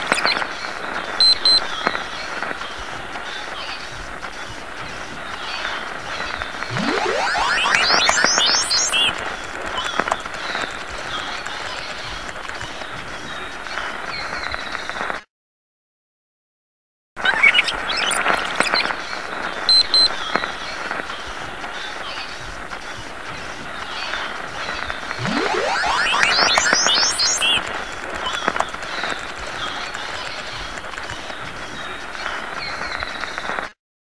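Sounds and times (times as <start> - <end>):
rising electronic sweep: 6.7 - 9.4, 25.2 - 27.8.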